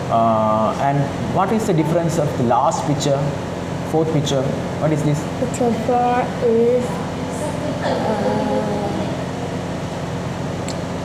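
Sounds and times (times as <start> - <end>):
air conditioner humming: 0.0 - 11.0
person saying uhh: 7.8 - 9.2.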